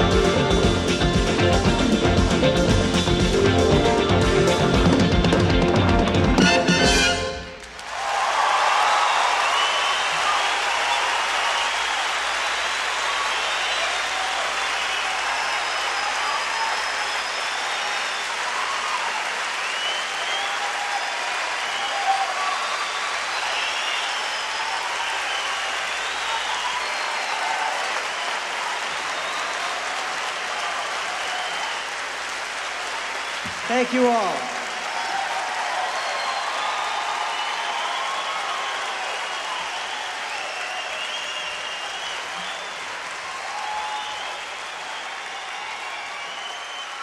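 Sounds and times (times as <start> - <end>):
audience applauding and cheering: 0.0 - 47.0
shouts and whistles: 8.1 - 32.0, 33.1 - 47.0.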